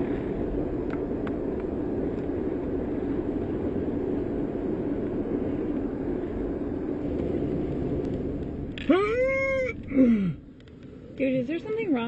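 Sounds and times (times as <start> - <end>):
man wailing cat-like cry: 8.8 - 9.8.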